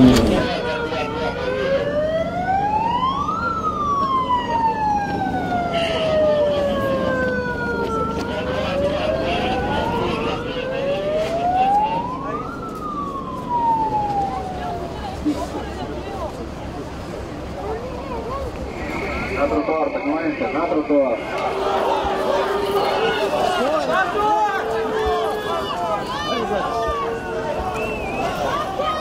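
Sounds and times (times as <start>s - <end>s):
police siren wailing: 0.0s - 29.0s
street and crowd noise: 0.0s - 29.0s.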